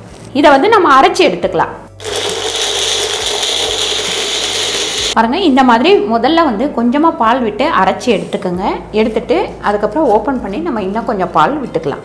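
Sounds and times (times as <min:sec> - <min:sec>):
blender motor grinding: 0:02.0 - 0:05.2.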